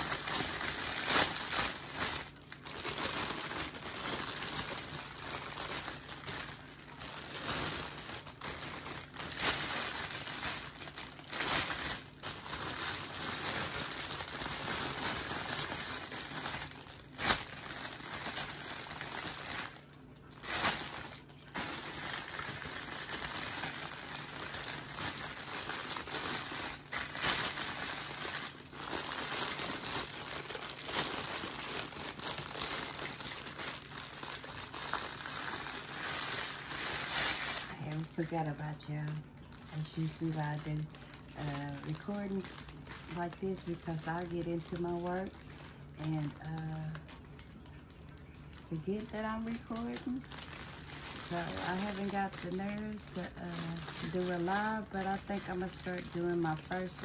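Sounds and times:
plastic bag crinkling: 0.0s - 57.0s.

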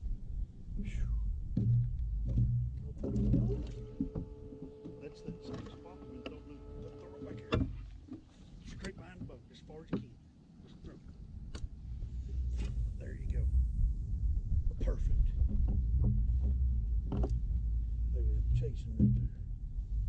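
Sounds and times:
steady hum: 0.0s - 20.0s.

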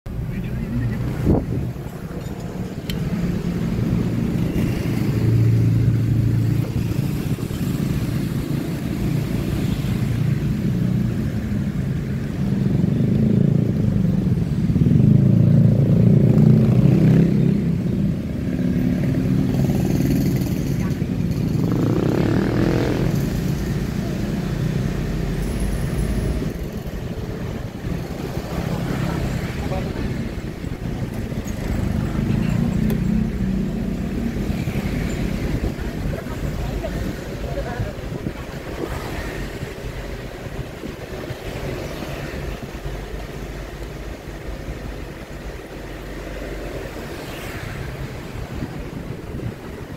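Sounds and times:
car engine and road noise: 0.0s - 49.9s
motorcycles and scooters passing: 0.2s - 49.9s.

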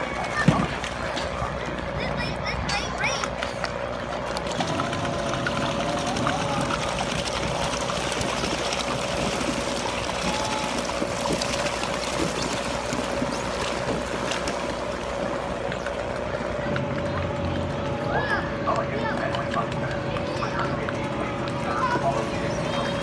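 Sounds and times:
steady hum: 0.0s - 23.0s
water churning and trickling: 0.0s - 23.0s.

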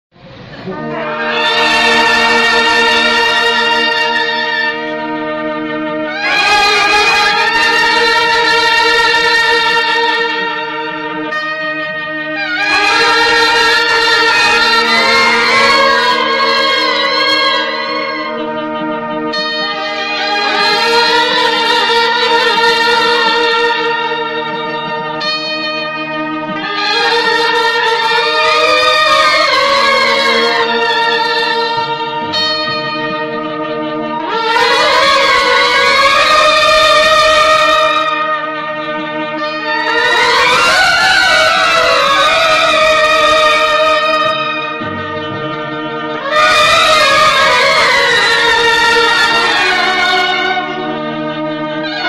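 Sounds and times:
brass band holding a loud chord: 0.2s - 52.0s.

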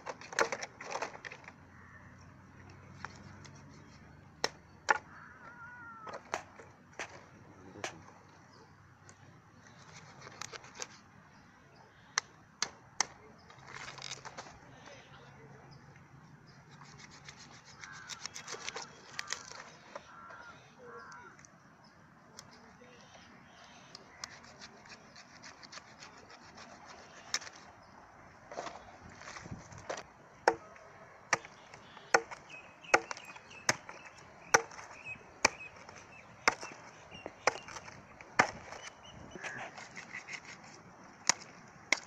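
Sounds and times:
blade scraping: 16.7s - 20.0s, 24.2s - 27.7s, 31.3s - 42.0s
blade chopping chicken on wood: 31.3s - 38.9s.

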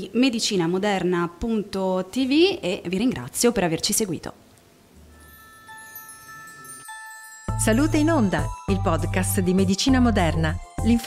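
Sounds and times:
bell-like chime jingle: 5.0s - 10.0s.

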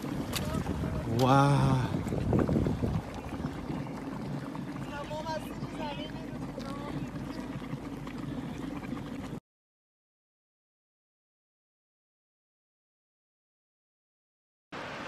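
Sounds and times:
running water of stream: 0.0s - 9.4s, 14.8s - 15.0s
wind on microphone: 0.0s - 9.4s.

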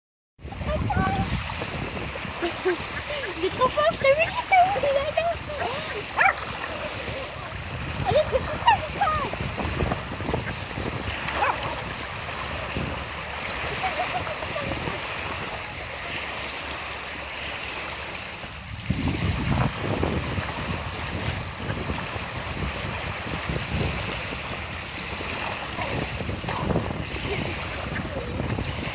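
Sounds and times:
wind buffeting microphone: 0.4s - 28.9s
small waves lapping on pebbles: 0.5s - 28.9s
small dog crying: 5.9s - 6.5s.

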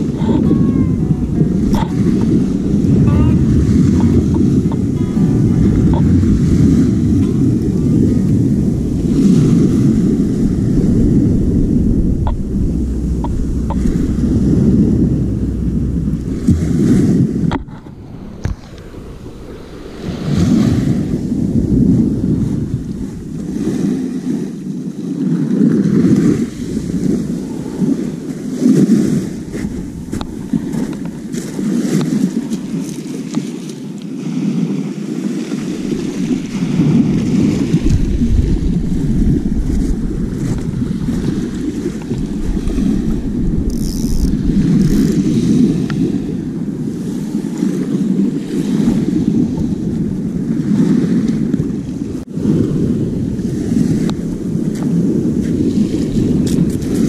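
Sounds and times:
waves washing onto beach: 0.0s - 57.0s
wind buffeting microphone: 0.0s - 57.0s.

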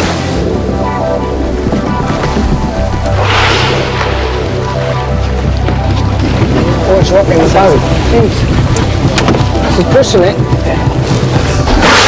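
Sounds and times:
background music: 0.0s - 12.0s
boat motor humming: 0.0s - 12.0s.

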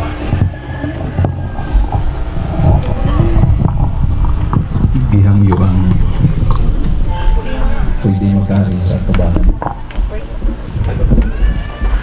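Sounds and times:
indistinct voices: 0.0s - 12.0s
loud uneven low rumble: 0.0s - 12.0s.

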